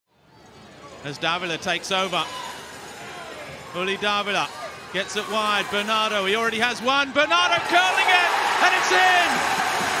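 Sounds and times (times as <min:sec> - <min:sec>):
stadium crowd noise: 0:00.1 - 0:10.0
man commentating: 0:03.8 - 0:09.4.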